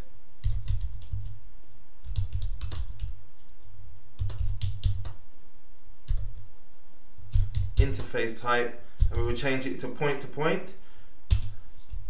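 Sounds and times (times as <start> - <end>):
typing on computer keyboard: 0.4 - 1.4, 2.0 - 3.5, 4.2 - 5.2, 7.3 - 7.9.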